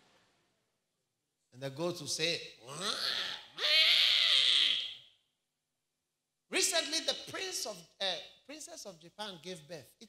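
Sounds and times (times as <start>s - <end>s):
man imitating animal call: 2.6s - 5.0s.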